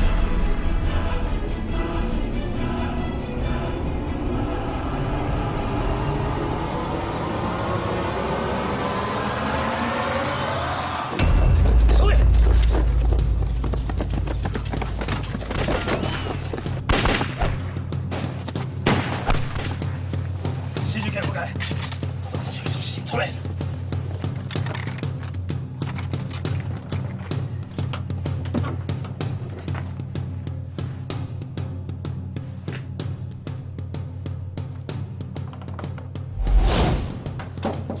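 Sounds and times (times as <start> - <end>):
tense dramatic music: 0.0 - 38.0.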